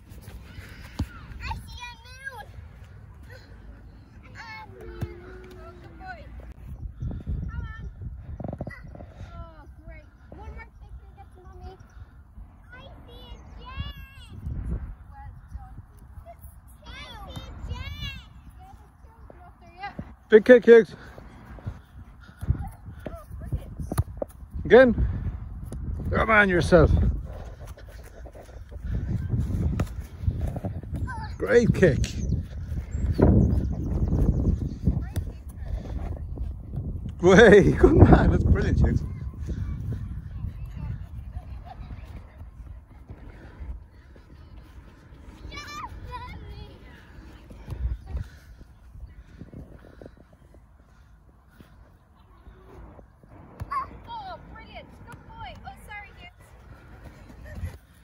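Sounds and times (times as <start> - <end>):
wind rumbling on microphone: 6.0 - 16.8, 21.0 - 58.0.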